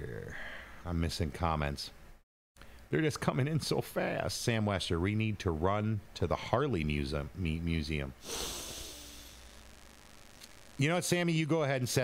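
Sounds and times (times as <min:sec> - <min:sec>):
man speaking: 0:00.0 - 0:02.0, 0:10.8 - 0:12.0
man exhaling through nose: 0:08.2 - 0:09.5.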